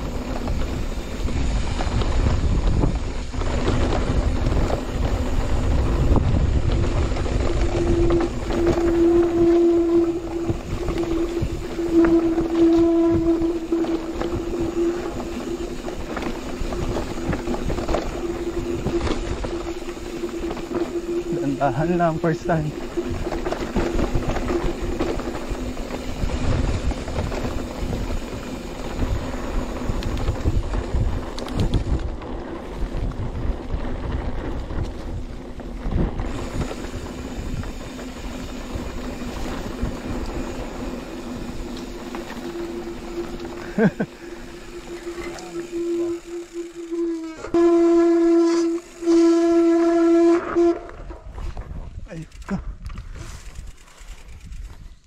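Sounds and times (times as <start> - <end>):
bike tyre rumble: 0.0 - 55.0
wind: 0.0 - 55.0
loud buzzing tone: 7.4 - 26.0, 36.3 - 51.2.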